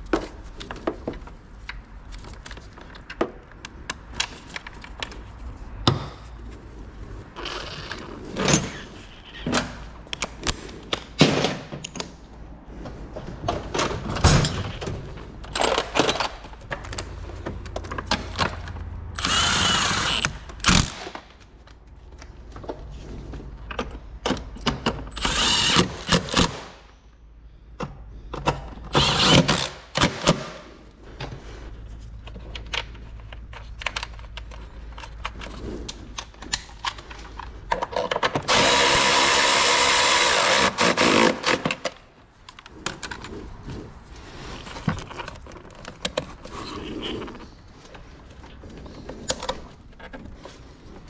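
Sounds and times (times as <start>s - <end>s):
power tool motor whine: 19.2s - 20.9s, 25.2s - 26.0s, 38.5s - 41.3s.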